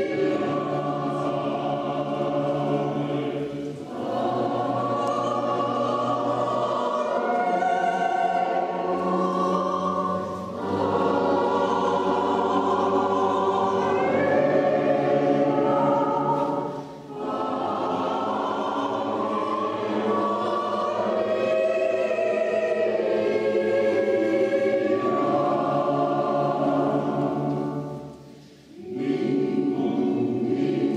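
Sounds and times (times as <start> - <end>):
choir singing: 0.0 - 30.9.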